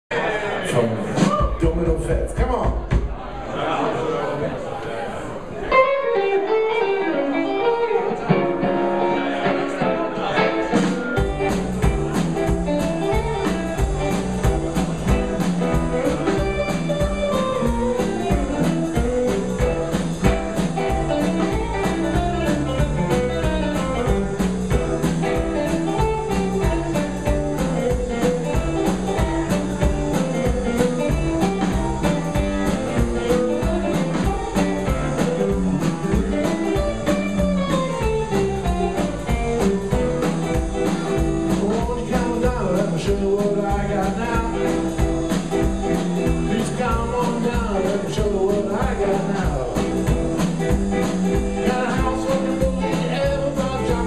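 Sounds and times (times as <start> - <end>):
blues band playing: 0.1 - 3.5, 5.3 - 54.0.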